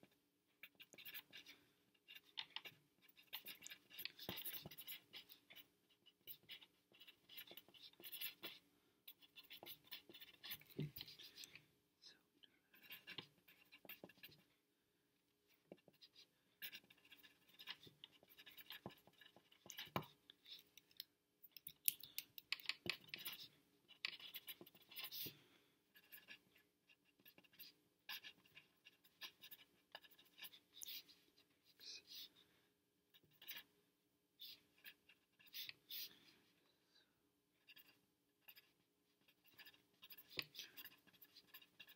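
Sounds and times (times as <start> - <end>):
pencil scratching on paper: 0.0 - 11.6, 12.7 - 14.5, 15.5 - 20.8, 22.1 - 32.5, 33.1 - 33.7, 34.4 - 36.2, 37.6 - 41.9.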